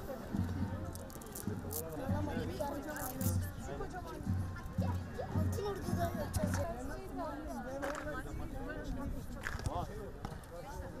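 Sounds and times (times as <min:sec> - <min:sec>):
children talking and calling: 0:00.0 - 0:09.4.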